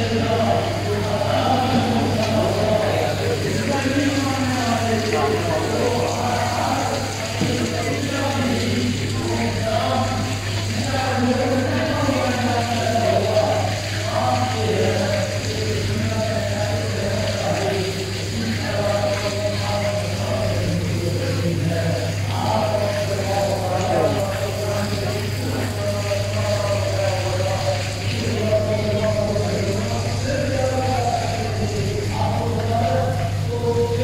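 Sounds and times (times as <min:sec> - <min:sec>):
man chanting: 0:00.0 - 0:34.0.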